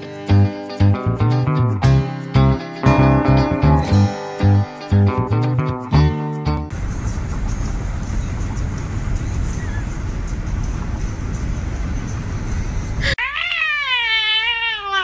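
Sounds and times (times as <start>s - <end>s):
strummed guitar music: 0.0s - 6.8s
cat meowing: 13.2s - 15.0s.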